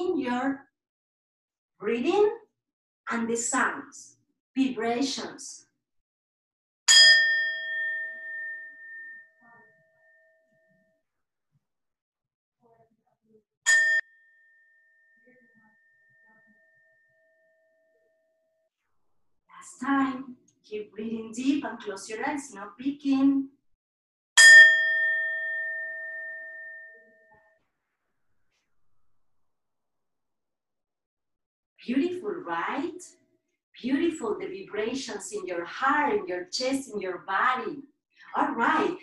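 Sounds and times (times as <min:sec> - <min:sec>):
singing bowl ringing: 0:06.9 - 0:10.9, 0:13.7 - 0:18.6, 0:24.4 - 0:27.6.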